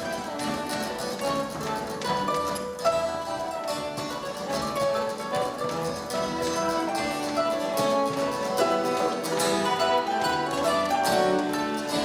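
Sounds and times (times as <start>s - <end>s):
acoustic guitar: 0.0s - 12.0s
mandolin: 0.0s - 12.0s.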